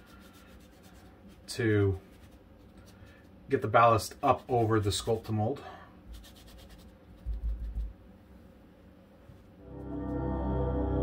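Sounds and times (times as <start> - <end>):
foam brush dabbing on plaster: 0.0 - 8.0
ambient background music: 9.6 - 11.0.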